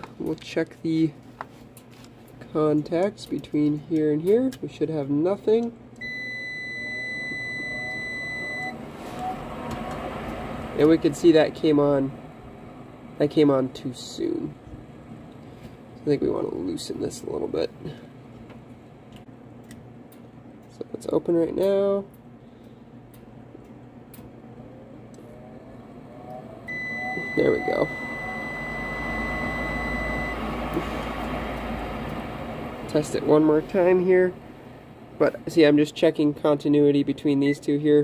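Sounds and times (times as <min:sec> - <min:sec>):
multimeter continuity beep: 0:06.0 - 0:08.8, 0:26.7 - 0:31.0
blower motor whirring: 0:06.0 - 0:15.9, 0:24.4 - 0:35.6
low hum: 0:06.0 - 0:16.7, 0:22.2 - 0:36.4.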